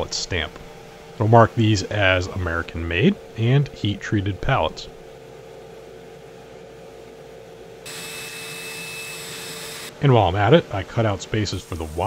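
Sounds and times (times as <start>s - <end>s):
low steady hum: 0.0s - 9.1s
laser cutter blowing hiss: 11.3s - 12.0s.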